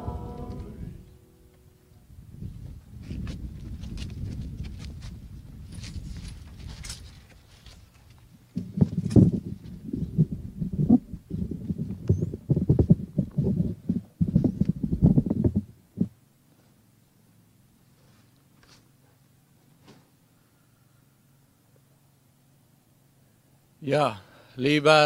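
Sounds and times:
low rumbling: 0.0 - 7.1, 8.3 - 16.2
loud low thumps on microphone: 8.6 - 16.2.

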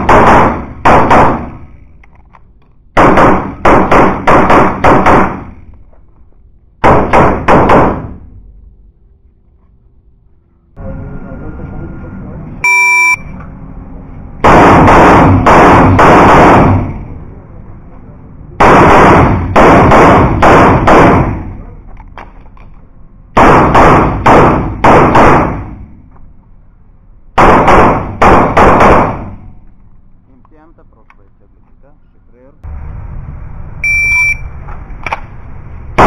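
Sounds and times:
shot timer beep: 12.6 - 13.4, 33.8 - 34.5
pistol shots echoing indoors: 14.4 - 16.9, 18.6 - 21.4, 23.3 - 25.8, 27.4 - 29.4.

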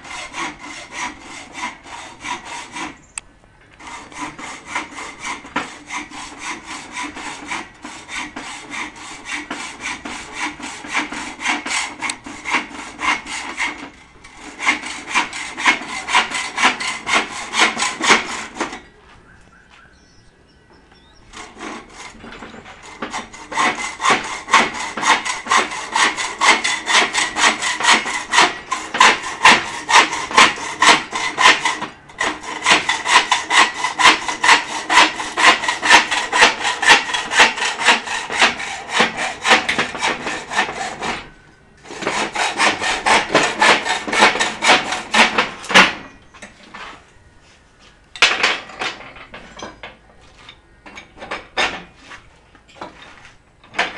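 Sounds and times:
hacksaw cutting steel pipe: 0.0 - 3.0, 3.8 - 18.9, 21.3 - 46.6.

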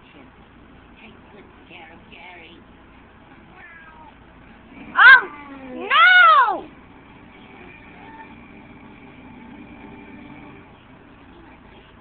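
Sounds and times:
cartoon meowing: 5.0 - 6.7.

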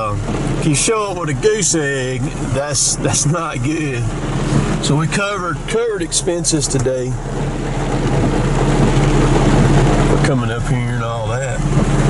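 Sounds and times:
rain on windshield and roof: 0.0 - 12.0
truck engine running: 0.0 - 12.0.

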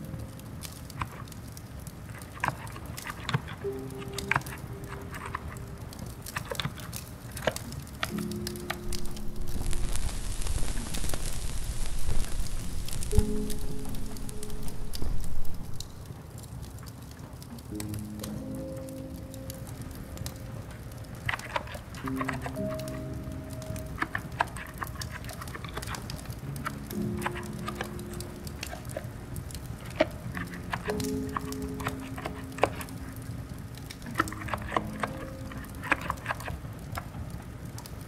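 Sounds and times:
fireplace crackling: 0.0 - 38.0
rain: 0.0 - 38.0
soft background music: 0.0 - 38.0.

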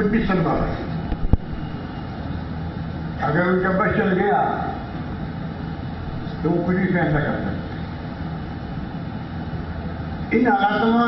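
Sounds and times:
rumbling background noise: 0.0 - 11.0.

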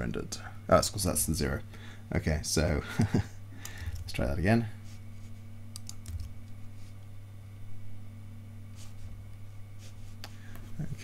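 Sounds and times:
low steady hum: 0.0 - 11.0
computer keys clicking: 5.7 - 6.6.

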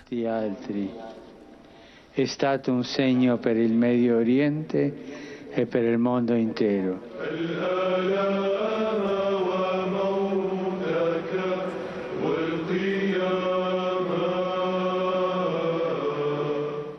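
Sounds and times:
male choir chanting: 5.6 - 16.9.

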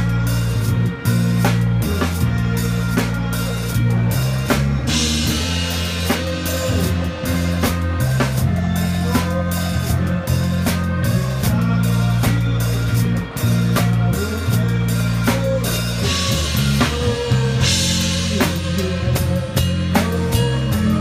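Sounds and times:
drum kit beat: 0.0 - 21.0
live band playing: 0.0 - 21.0.

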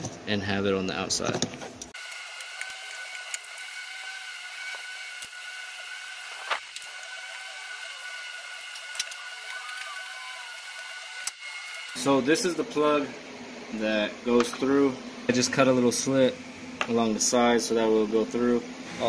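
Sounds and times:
steady high-pitched whine: 2.0 - 19.0.

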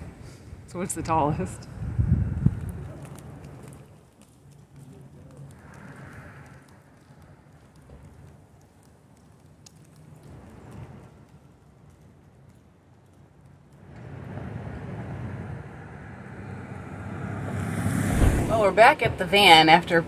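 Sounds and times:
hum of passing vehicles: 4.6 - 8.4, 13.7 - 20.0.

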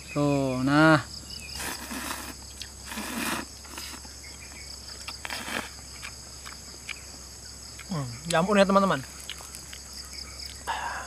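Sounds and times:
high chirring of insects: 0.0 - 11.0
person slurping noodles: 1.6 - 4.0.

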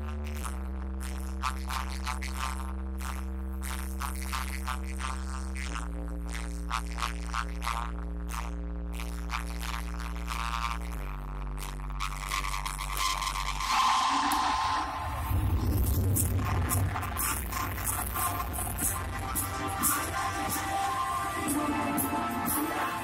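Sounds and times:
regular percussion: 15.2 - 23.0.

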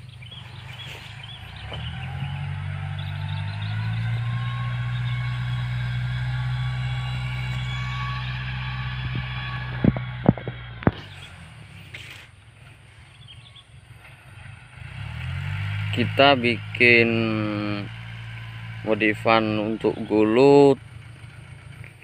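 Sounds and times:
tractor engine running: 0.0 - 22.0.

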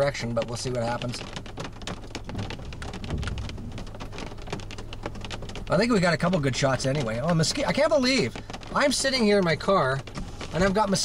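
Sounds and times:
rain on car windshield: 0.0 - 11.0
steady low rumble: 2.3 - 5.2.

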